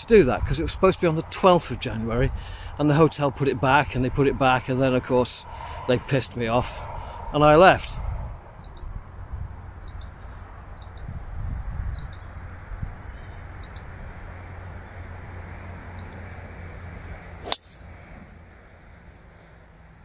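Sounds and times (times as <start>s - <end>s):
wind rumbling on microphone: 0.0s - 18.4s
golf club striking ball: 17.4s - 17.8s.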